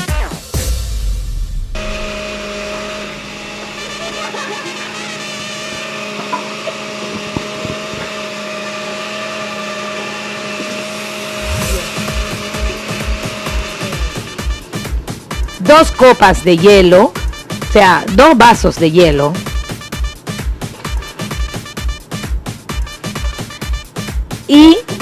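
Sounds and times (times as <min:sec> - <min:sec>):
music beat: 0:00.0 - 0:06.3, 0:11.3 - 0:25.0
blender motor whine: 0:01.6 - 0:16.6.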